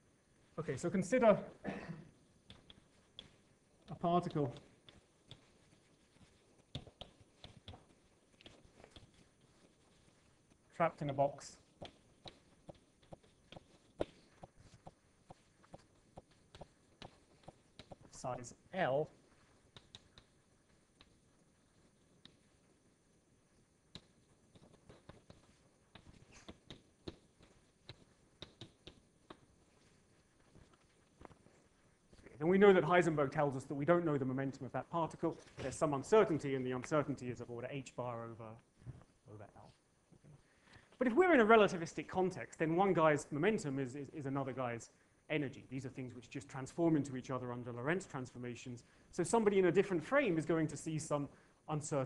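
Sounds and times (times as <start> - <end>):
chalk tapping on blackboard: 2.4 - 18.2, 19.4 - 22.6, 23.9 - 29.9.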